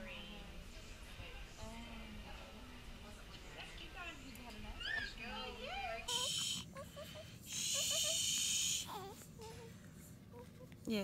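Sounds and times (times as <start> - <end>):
babies whimpering and grunting: 4.8 - 10.7.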